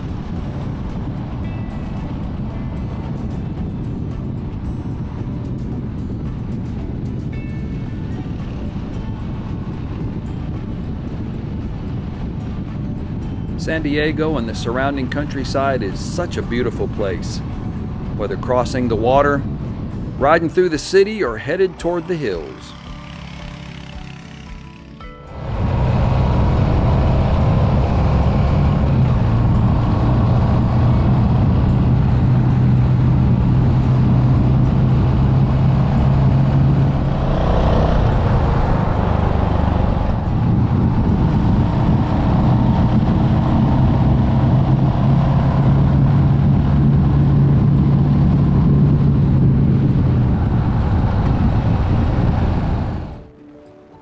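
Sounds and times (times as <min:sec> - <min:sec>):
wind rushing: 0:00.0 - 0:53.3
motorcycle engine cruising: 0:00.0 - 0:54.0.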